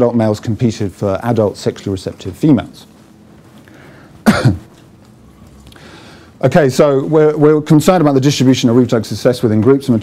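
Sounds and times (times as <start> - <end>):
man coughing: 4.2 - 4.8.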